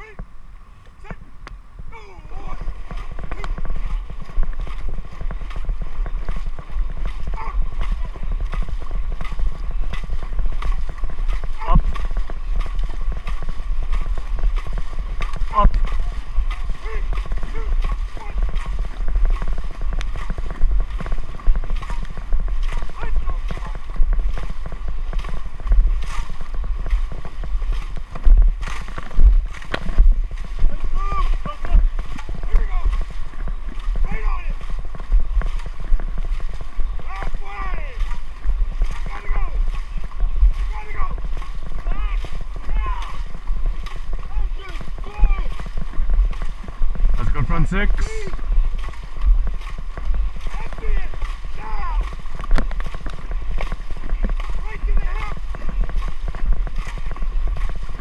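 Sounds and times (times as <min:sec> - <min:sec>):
paddles pulling through water: 0:00.0 - 0:58.0
water splashing along hull: 0:00.0 - 0:58.0
wind buffeting microphone: 0:00.0 - 0:58.0.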